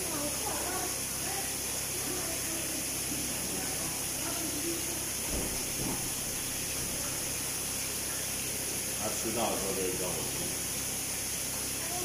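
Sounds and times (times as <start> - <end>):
steady high hiss: 0.0 - 12.0.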